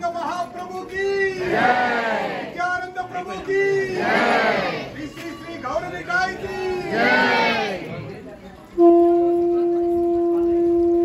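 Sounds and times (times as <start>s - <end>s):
group of voices chanting: 1.4s - 2.6s, 3.8s - 5.0s, 6.5s - 7.8s.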